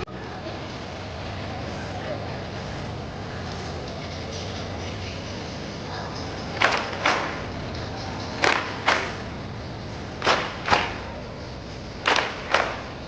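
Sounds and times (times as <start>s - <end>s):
group clapping in unison: 6.6s - 7.4s, 8.4s - 9.3s, 10.2s - 11.1s, 12.0s - 12.9s.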